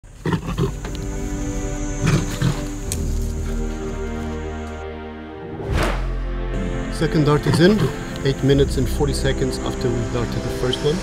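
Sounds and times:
lion growling: 0:00.1 - 0:01.1, 0:02.0 - 0:04.0, 0:07.4 - 0:08.2
background music sustained tones: 0:00.1 - 0:11.0.

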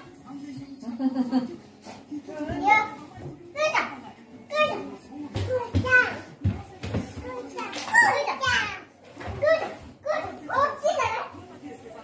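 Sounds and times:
small children babbling and calling: 0:02.4 - 0:11.6.

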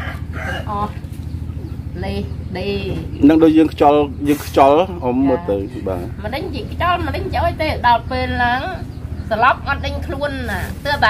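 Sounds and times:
rooster crowing: 0:00.0 - 0:01.0
chickens clucking: 0:00.0 - 0:11.0
low mechanical hum: 0:00.0 - 0:11.0.

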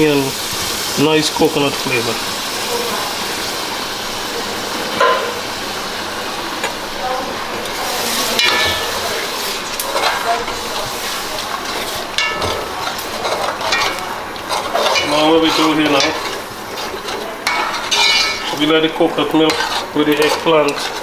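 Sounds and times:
steady hiss: 0:00.0 - 0:16.8
spoon scraping metal pot: 0:09.8 - 0:21.0.

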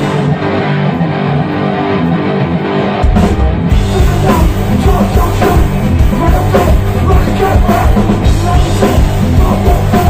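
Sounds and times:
live rock band: 0:00.0 - 0:10.0
loud electric guitar: 0:00.0 - 0:10.0.

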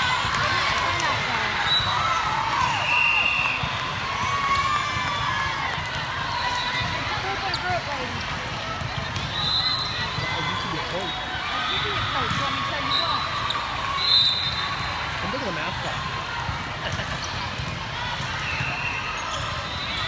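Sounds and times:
volleyballs bouncing on floor: 0:00.0 - 0:11.0, 0:11.8 - 0:13.1, 0:14.8 - 0:20.0
many voices chattering: 0:00.0 - 0:20.0.

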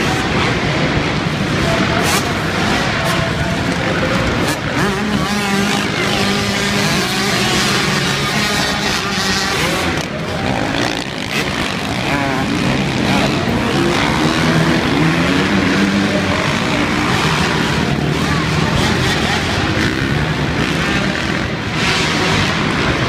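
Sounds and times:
dirt bike engines revving: 0:00.0 - 0:23.0.

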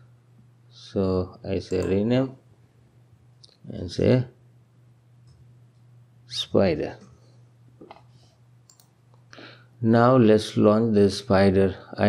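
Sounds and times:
low steady hum: 0:00.0 - 0:12.0
computer input clicks: 0:01.7 - 0:02.0, 0:08.7 - 0:08.9.

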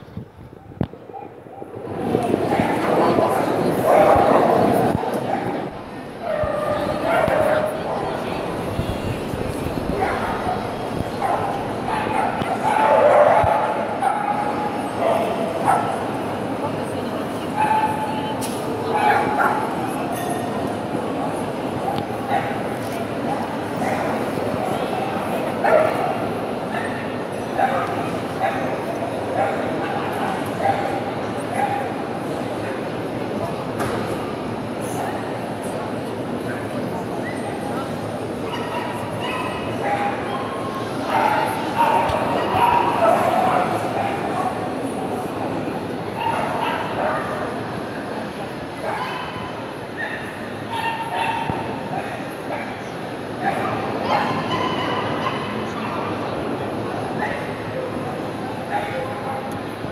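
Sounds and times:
murmur of crowd chatter: 0:00.0 - 0:59.9
small dogs barking and yipping: 0:48.8 - 0:52.8, 0:53.4 - 0:55.8.

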